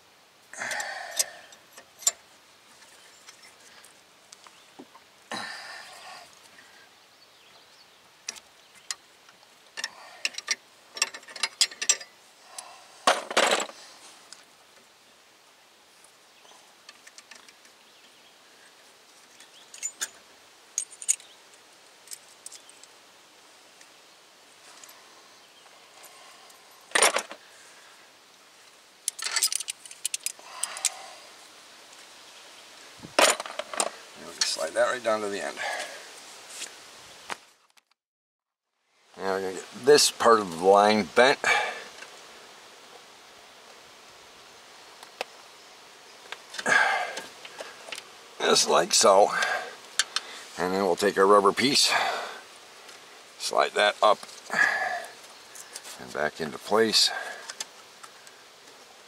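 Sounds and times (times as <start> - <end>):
metal tool clinks and clatter: 29.1 - 30.4.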